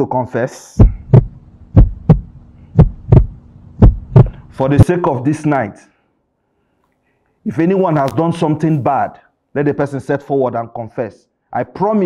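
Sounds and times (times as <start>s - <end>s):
steady low hum: 0.6s - 6.0s
heartbeat thumps: 0.8s - 4.9s.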